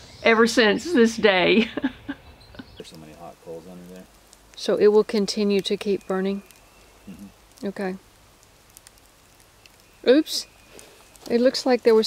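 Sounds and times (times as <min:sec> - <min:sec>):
smouldering coals crackling: 0:00.0 - 0:12.0.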